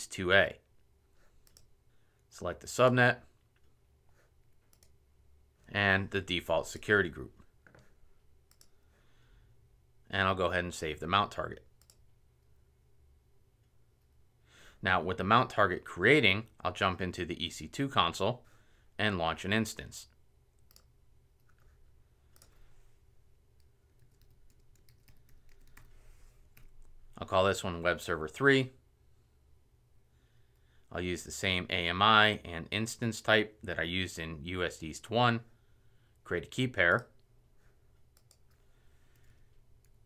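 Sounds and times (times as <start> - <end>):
low room hum: 0.0 - 40.0
keyboard typing: 1.4 - 1.7, 4.5 - 5.0, 8.5 - 8.8, 11.8 - 12.0, 20.6 - 22.6, 23.5 - 27.0
mouse clicks: 8.5 - 8.8, 20.6 - 21.7.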